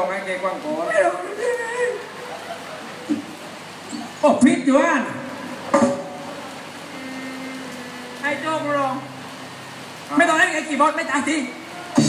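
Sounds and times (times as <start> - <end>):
steady hiss and hum: 0.0 - 12.0.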